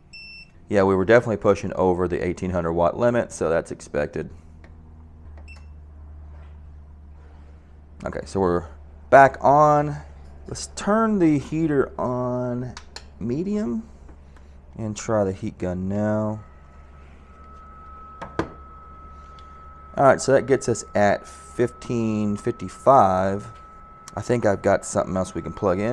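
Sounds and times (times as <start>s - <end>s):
steady low hum: 0.0s - 25.9s
sharp clicks: 12.7s - 13.2s
short electronic beep: 16.3s - 25.9s.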